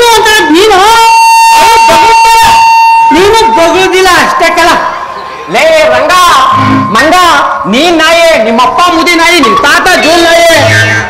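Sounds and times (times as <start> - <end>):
high-pitched electronic tone: 6.0 - 7.7.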